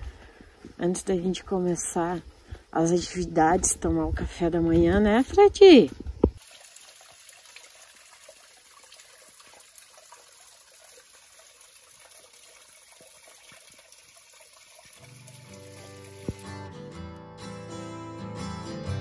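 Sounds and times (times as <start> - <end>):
waterfall trickling into pool: 6.3 - 16.7
acoustic guitar music: 15.0 - 19.0.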